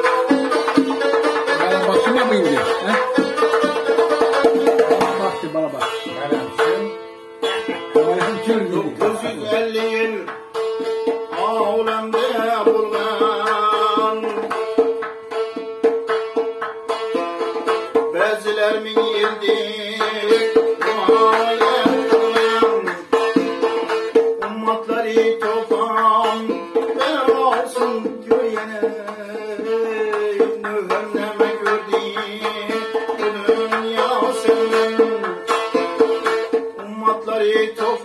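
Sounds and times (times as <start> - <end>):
man singing: 0.0 - 6.8, 7.5 - 10.5, 11.2 - 15.0, 18.0 - 38.0
frame drum beat: 0.0 - 37.9
plucked lute folk melody: 0.0 - 38.0.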